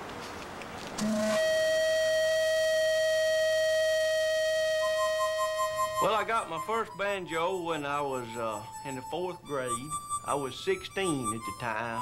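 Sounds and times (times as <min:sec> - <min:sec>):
higher musical note: 0:01.0 - 0:12.0
steady musical note: 0:01.0 - 0:12.0.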